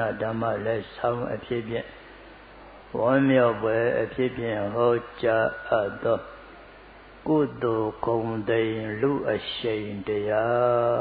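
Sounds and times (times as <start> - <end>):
man chanting: 0.0 - 2.0, 2.9 - 6.4, 7.2 - 11.0.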